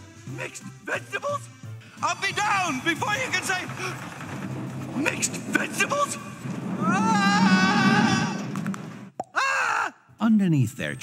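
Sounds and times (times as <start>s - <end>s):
low machine rumble: 2.5s - 9.1s
brief cry rising and falling: 6.8s - 8.7s
cartoon character screaming: 9.3s - 10.0s.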